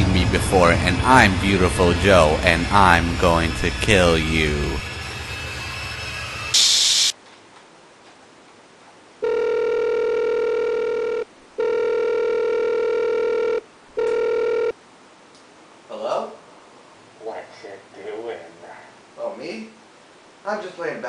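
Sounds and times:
loud burst of hiss: 1.4s - 7.2s
mobile phone ringing: 9.2s - 14.8s.

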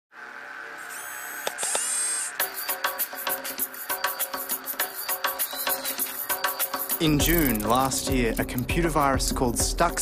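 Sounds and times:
buzzing electronic drone: 0.1s - 9.2s
bright hissing swell: 0.3s - 7.3s
high thin tones: 0.8s - 9.1s
sharp clicks: 6.0s - 8.8s.

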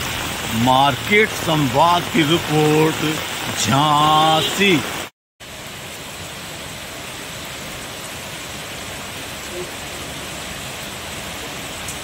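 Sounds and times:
heavy rain on standing water: 0.0s - 12.0s.

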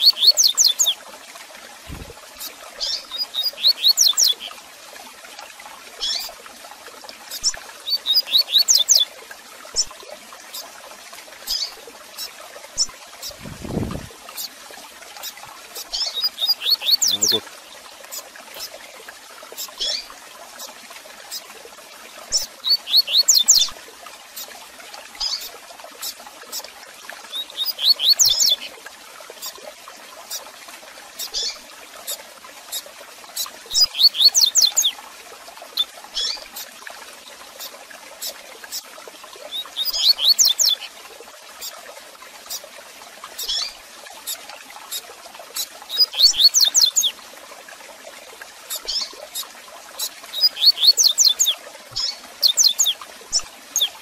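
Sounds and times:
bird song phrase: 2.8s - 4.6s, 7.9s - 9.0s, 15.9s - 17.5s, 22.6s - 23.6s, 27.3s - 28.7s, 33.8s - 34.9s, 39.5s - 40.9s, 45.9s - 47.1s, 50.4s - 54.0s.

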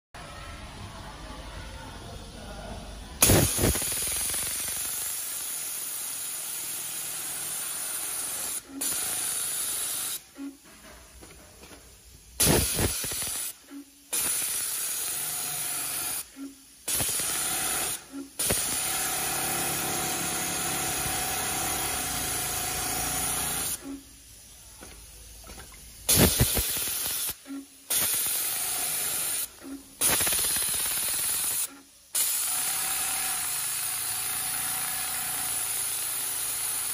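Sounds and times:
sewing machine running: 16.9s - 23.8s, 28.1s - 36.9s.

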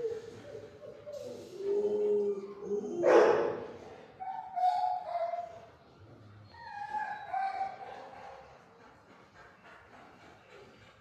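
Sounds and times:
dog barking: 3.0s - 3.6s
dog whining: 4.2s - 5.6s, 6.5s - 8.0s.

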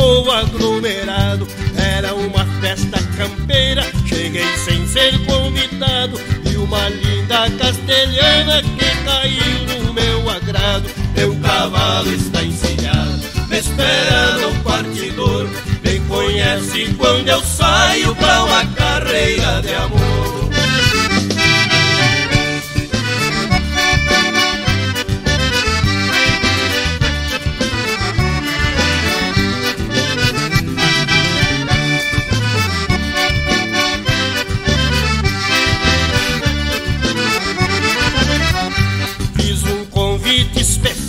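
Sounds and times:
accordion playing lead melody: 0.0s - 41.0s
bass guitar drums and tambourine: 0.0s - 41.0s.

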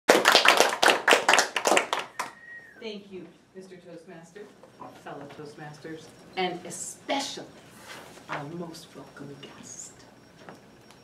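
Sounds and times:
people clapping: 0.1s - 2.5s.

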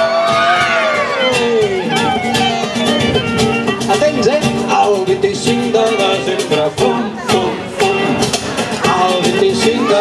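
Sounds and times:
acoustic guitars strumming: 0.0s - 10.0s
cajon drumming: 0.0s - 10.0s
clarinet notes: 1.0s - 4.0s.

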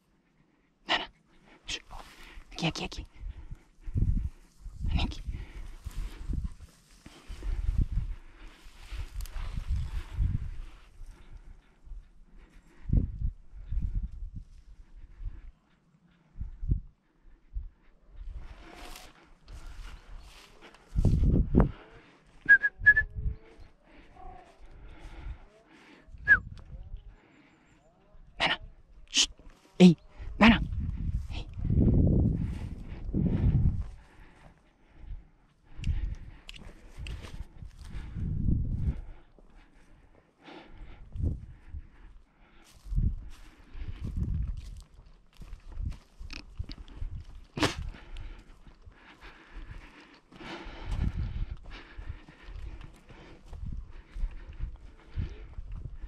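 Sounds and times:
footsteps through brush: 4.0s - 11.1s, 18.2s - 22.4s, 42.1s - 56.0s.

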